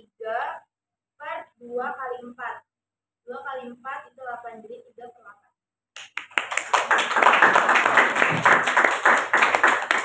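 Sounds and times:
small group clapping: 6.0 - 10.0.

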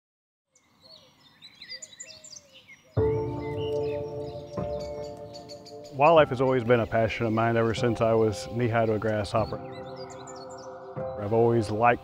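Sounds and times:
birds chirping: 0.5 - 12.0
music with sustained chords: 3.0 - 12.0.

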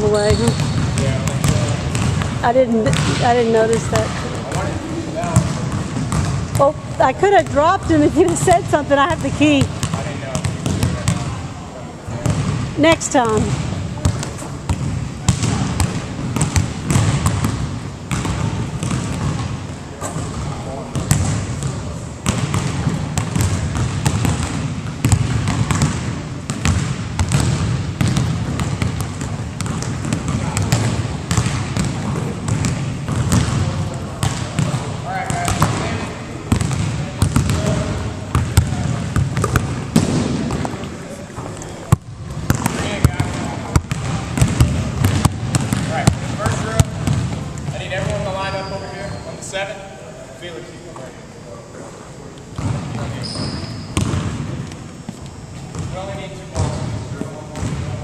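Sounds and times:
basketballs bouncing on wood floor: 0.0 - 11.4, 12.1 - 40.9, 41.9 - 48.6, 52.5 - 58.0.

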